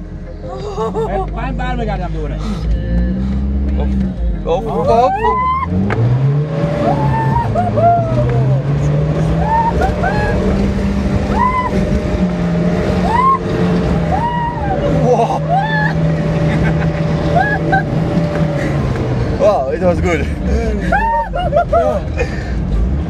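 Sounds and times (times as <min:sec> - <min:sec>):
suv engine revving under load: 0:02.2 - 0:23.0
passengers exclaiming: 0:04.5 - 0:05.8, 0:06.7 - 0:12.2, 0:12.9 - 0:16.5, 0:19.8 - 0:22.2.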